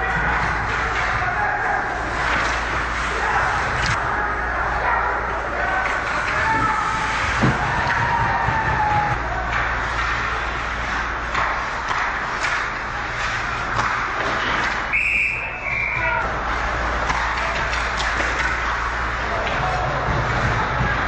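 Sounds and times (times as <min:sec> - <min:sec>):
sticks and puck clacking: 0:00.0 - 0:21.0
referee whistle blast: 0:14.9 - 0:16.1.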